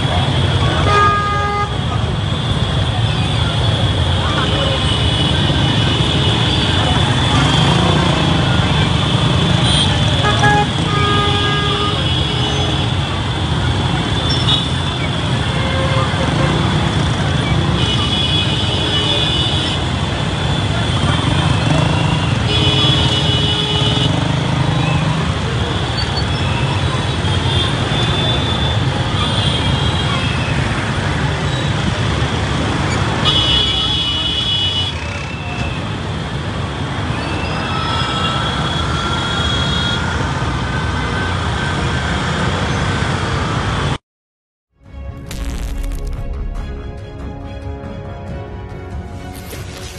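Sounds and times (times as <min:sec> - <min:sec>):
crowd voices: 0:00.0 - 0:10.9
engines: 0:00.0 - 0:33.6
horns honking: 0:03.8 - 0:13.2.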